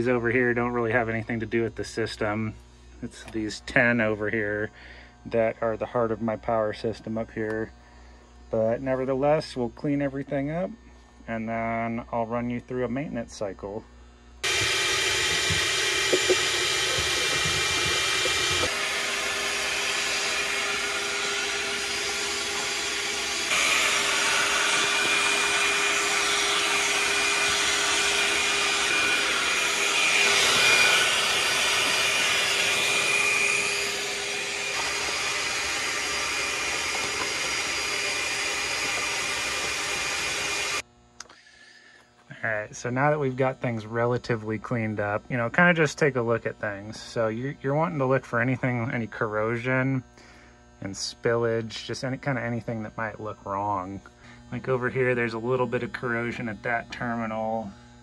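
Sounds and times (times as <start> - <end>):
shop vac sucking up dust: 14.4 - 58.0.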